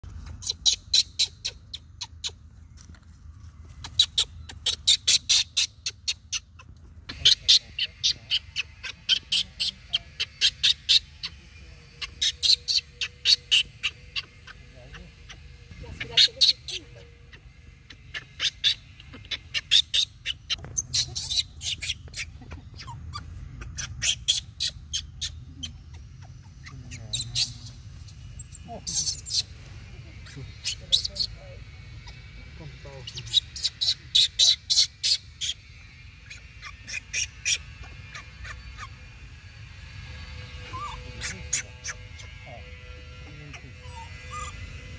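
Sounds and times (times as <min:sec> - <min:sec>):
low steady rumble: 0:00.0 - 0:44.9
fast high-pitched chirping: 0:03.8 - 0:44.9.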